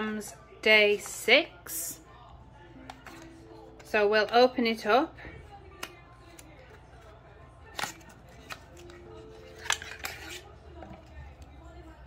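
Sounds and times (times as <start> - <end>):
faint background music: 0.0 - 12.0
package clicks and rustles: 7.7 - 10.5.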